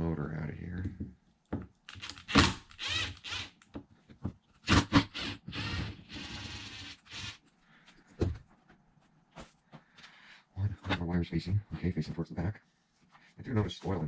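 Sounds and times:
cordless screwdriver running: 1.9 - 3.5.

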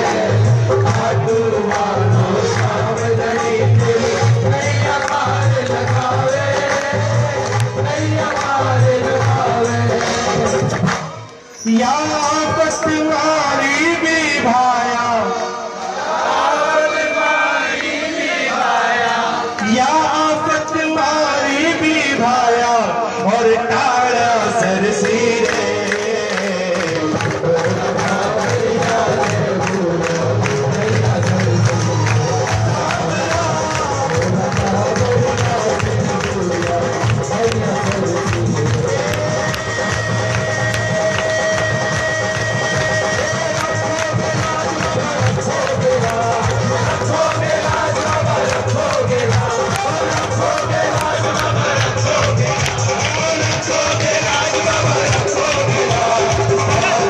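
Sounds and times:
amplified accompaniment with fast beat: 0.0 - 15.7, 19.4 - 57.0
man singing devotional song: 0.0 - 15.8, 18.5 - 57.0.

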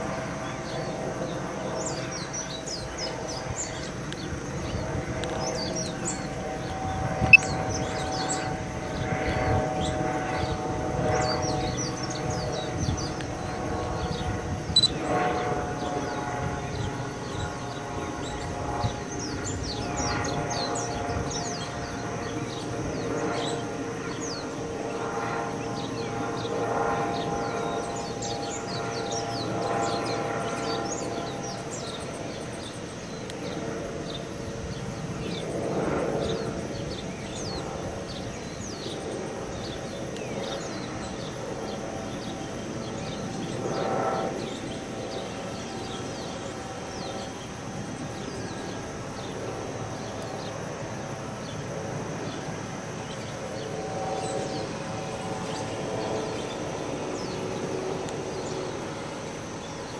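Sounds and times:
wavering hum: 0.0 - 59.9
small birds chirping: 0.4 - 59.9.

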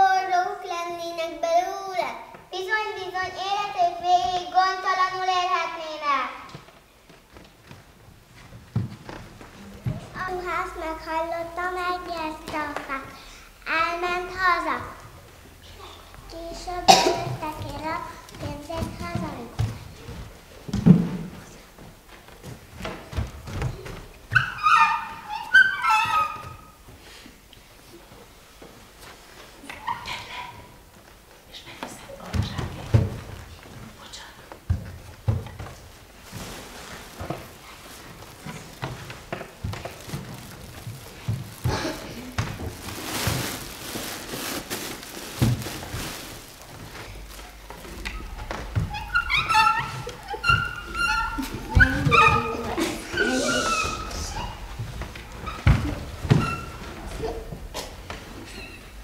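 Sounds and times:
children imitating animal calls: 24.3 - 26.8, 48.1 - 59.0
dog-like whining cries: 24.3 - 26.8
cloth sack rustling: 35.4 - 59.0.

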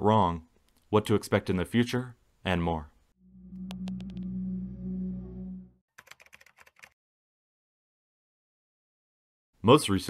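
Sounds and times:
low electronic drone: 3.2 - 5.8
keyboard typing clicks: 3.7 - 4.2, 6.0 - 7.0.

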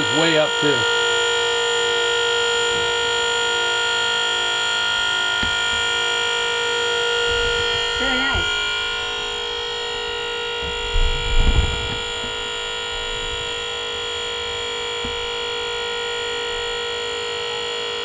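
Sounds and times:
hydraulic pump whining: 0.0 - 18.0.

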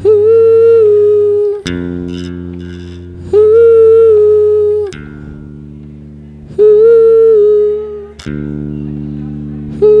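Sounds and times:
long high held notes: 0.0 - 10.0
low held bass guitar notes: 0.0 - 10.0.

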